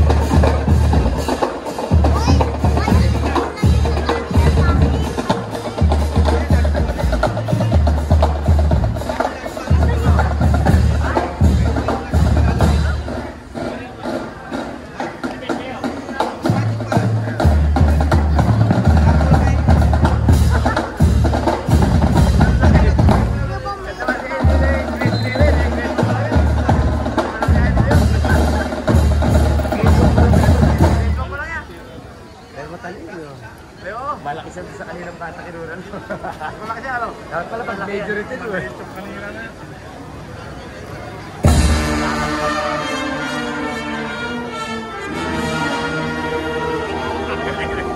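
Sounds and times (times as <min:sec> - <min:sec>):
marching band playing: 0:00.0 - 0:32.2, 0:40.8 - 0:47.9.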